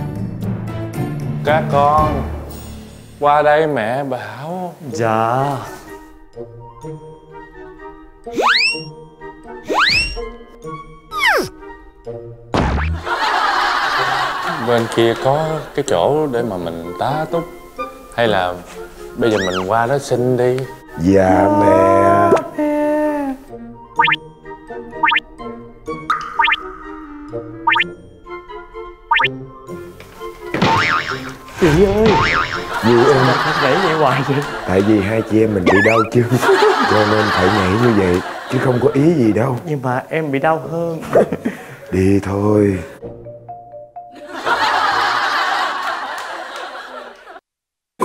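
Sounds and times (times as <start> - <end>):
light background music: 0.0 - 46.8
cartoon boing sound effect: 8.4 - 8.9, 9.7 - 10.2, 12.6 - 13.1, 24.0 - 24.2, 35.7 - 36.1
rising whistle sweep effect: 8.4 - 8.9, 9.7 - 10.2
voice calling out: 11.1 - 11.5, 19.4 - 19.7.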